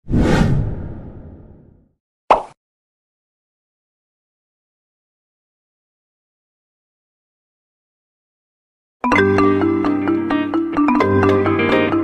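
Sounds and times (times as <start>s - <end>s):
whoosh hit: 0.0s - 1.8s.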